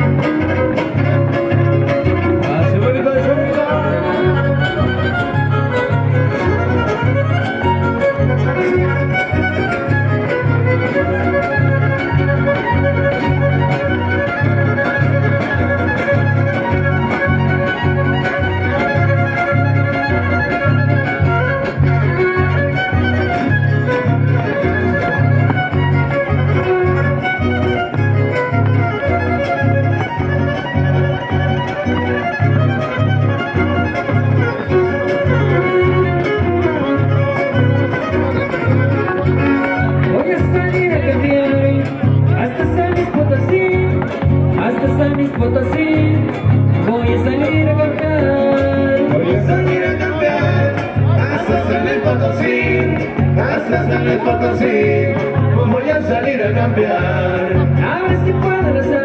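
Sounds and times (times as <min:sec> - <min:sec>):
fiddle melody: 0:00.0 - 0:59.0
guitars: 0:00.0 - 0:59.0
live band music: 0:00.0 - 0:59.0.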